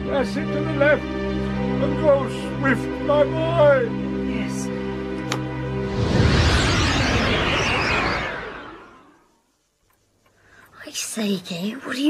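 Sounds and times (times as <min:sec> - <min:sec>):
rushing whoosh: 0:05.7 - 0:09.3.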